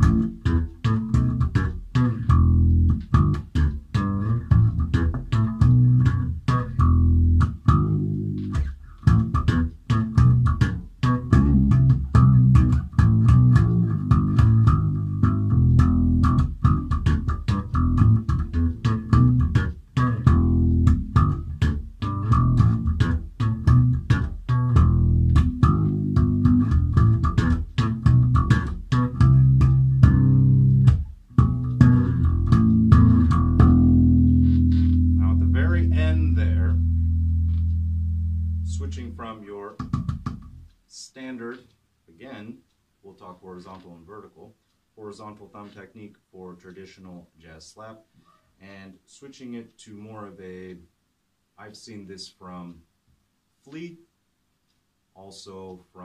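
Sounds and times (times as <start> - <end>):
slap bass guitar: 0.0 - 41.6.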